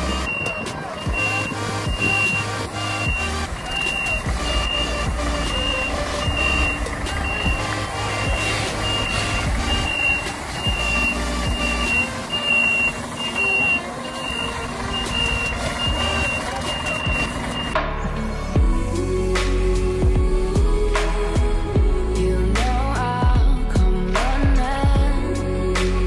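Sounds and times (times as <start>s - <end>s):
truck reverse alarm beeping: 0.0s - 17.8s
diesel engine running: 0.0s - 26.0s.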